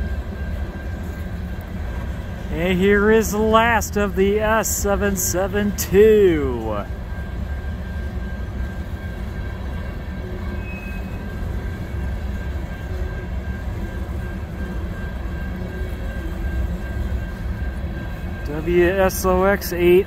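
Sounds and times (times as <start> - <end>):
thin high whine: 0.0 - 20.0
train wheels rumbling on rail: 0.0 - 20.0.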